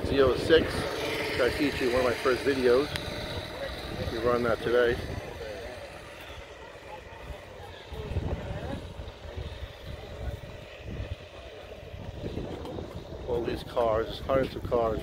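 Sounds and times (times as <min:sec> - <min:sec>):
wind on microphone: 0:00.0 - 0:06.6, 0:07.2 - 0:15.0
distant car engines: 0:00.0 - 0:15.0
faint voices: 0:00.0 - 0:15.0.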